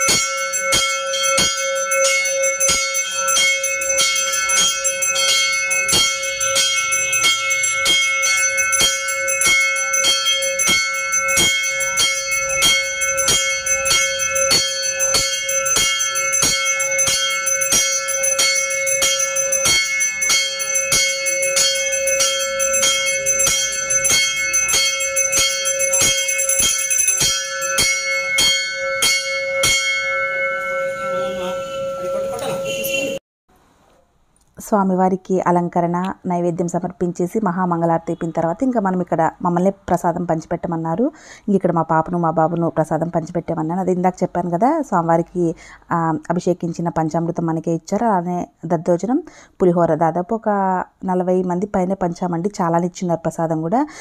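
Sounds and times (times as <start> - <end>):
brass temple bell ringing: 0.0 - 33.2.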